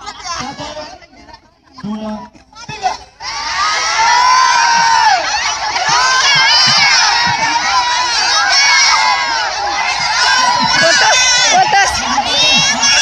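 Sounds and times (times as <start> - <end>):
crowd of women shouting and cheering: 2.8 - 13.0.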